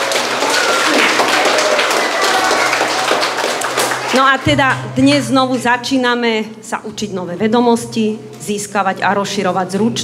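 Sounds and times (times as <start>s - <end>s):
crowd applause: 0.0s - 4.5s.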